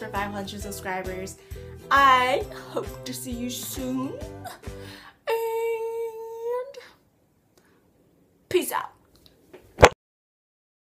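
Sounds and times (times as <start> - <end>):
upbeat background music: 0.0 - 5.1.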